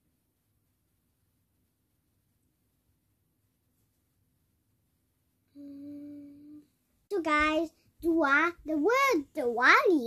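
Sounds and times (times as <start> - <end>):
girl humming: 5.5 - 6.7.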